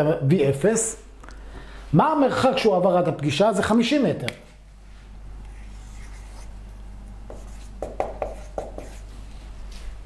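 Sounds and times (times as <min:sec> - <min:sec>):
low steady hum: 0:00.0 - 0:10.0
marker scratching on whiteboard: 0:05.5 - 0:06.6, 0:07.3 - 0:09.2.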